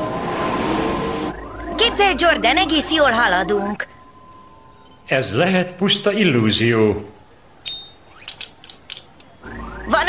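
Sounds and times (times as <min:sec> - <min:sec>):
engine rumble with rising whoosh: 0:00.0 - 0:04.6.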